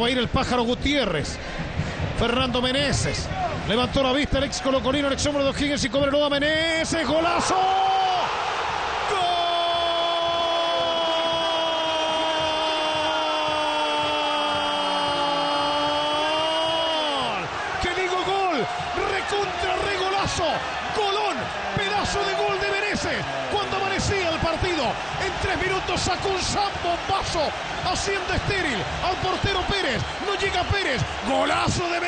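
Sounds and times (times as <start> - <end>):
stadium crowd cheering: 0.0 - 32.0
excited shouting: 7.2 - 32.0.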